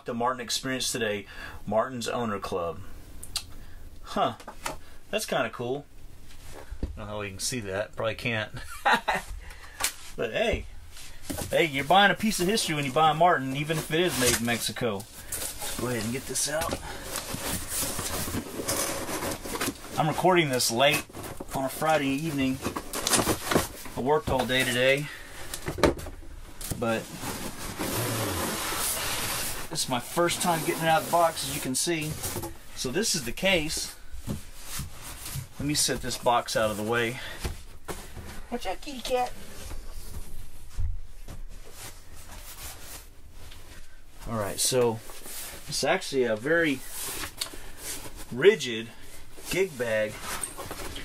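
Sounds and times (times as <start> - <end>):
cardboard box rustling and scraping: 15.3 - 20.2, 26.8 - 32.5.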